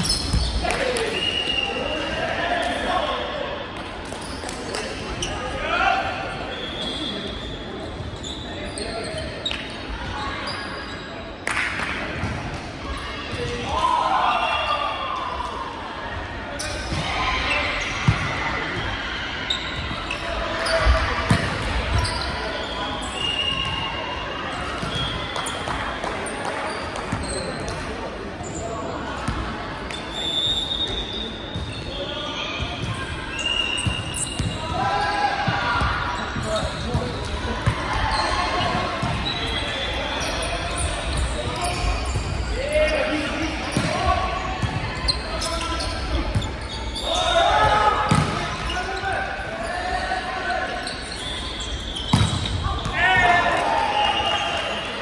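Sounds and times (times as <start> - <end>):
players shouting: 52.5 - 55.0.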